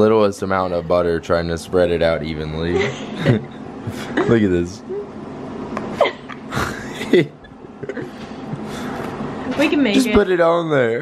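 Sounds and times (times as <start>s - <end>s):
person laughing: 2.7s - 5.1s, 5.9s - 8.8s.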